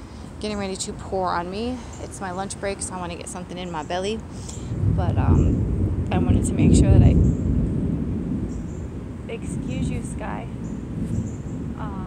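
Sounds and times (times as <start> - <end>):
rolling thunder: 4.7 - 12.0.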